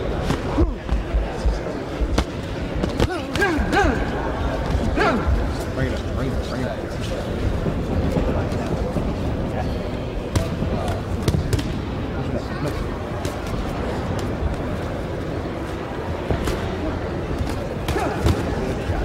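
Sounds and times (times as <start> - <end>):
murmur of voices: 0.0 - 19.0.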